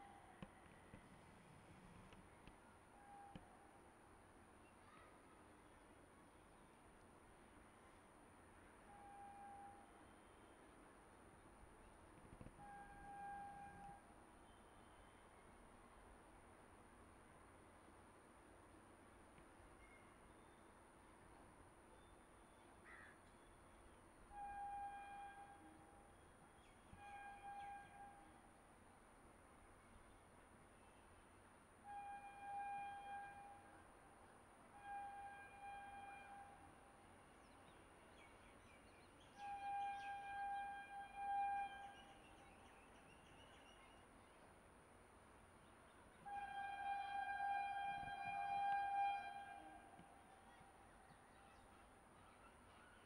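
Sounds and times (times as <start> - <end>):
distant train horn blasts: 2.9 - 3.8, 8.7 - 10.9, 12.5 - 15.4, 24.2 - 28.6, 31.8 - 37.6, 39.4 - 42.8, 46.2 - 53.0.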